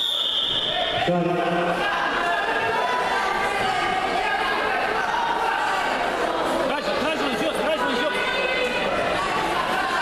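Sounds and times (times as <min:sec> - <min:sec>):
referee's whistle blast: 0:00.0 - 0:01.1.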